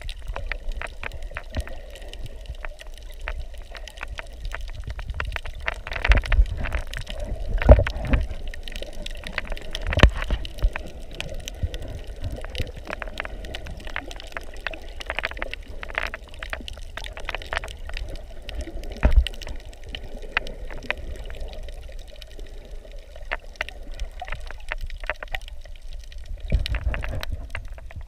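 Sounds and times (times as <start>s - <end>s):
underwater gurgling and sloshing: 0.0s - 28.0s.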